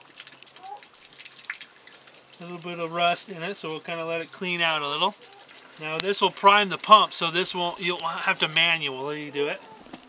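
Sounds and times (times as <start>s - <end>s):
crackle of small drips: 0.0s - 10.0s
water trickling from hose: 0.0s - 10.0s.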